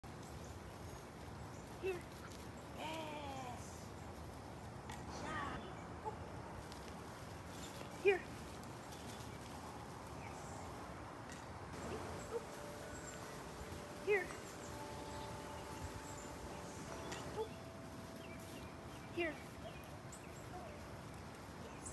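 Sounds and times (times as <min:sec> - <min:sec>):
woman speaking to dog: 0:14.0 - 0:14.5, 0:19.1 - 0:19.8.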